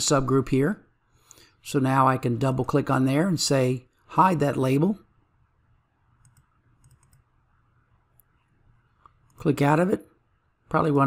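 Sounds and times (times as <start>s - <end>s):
computer mouse clicks: 6.2s - 7.3s, 8.1s - 9.5s.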